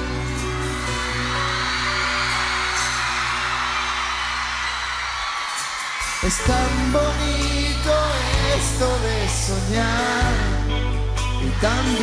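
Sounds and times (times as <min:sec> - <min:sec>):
electric guitar: 0:00.0 - 0:12.0.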